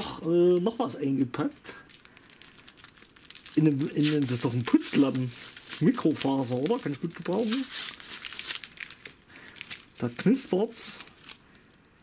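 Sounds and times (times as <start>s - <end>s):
plastic wrappers crinkling: 1.7s - 11.8s.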